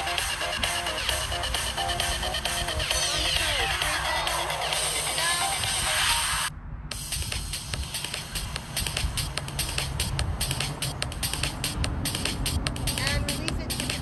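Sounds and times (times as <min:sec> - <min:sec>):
workout music: 0:00.0 - 0:14.0.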